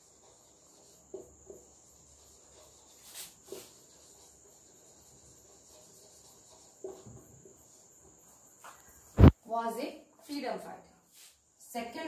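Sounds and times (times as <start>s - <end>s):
marker strokes on a whiteboard: 0.0s - 9.3s, 10.2s - 12.0s.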